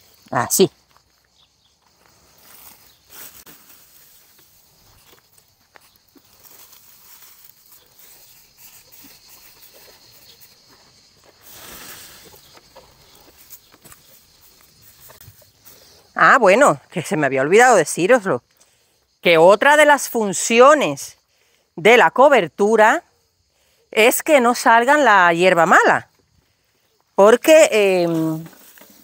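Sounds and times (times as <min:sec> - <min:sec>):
footsteps on dry ground: 0:00.8 - 0:15.9
dry pine needles rustling: 0:01.8 - 0:10.5.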